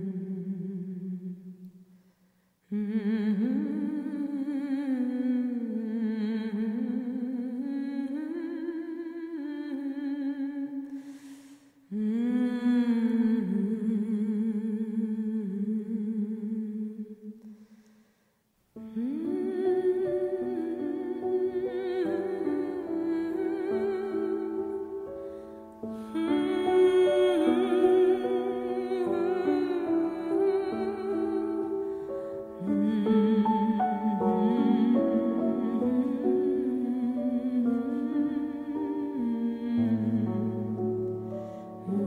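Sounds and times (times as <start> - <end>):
person humming a melody: 0.0 - 1.7, 18.8 - 42.0.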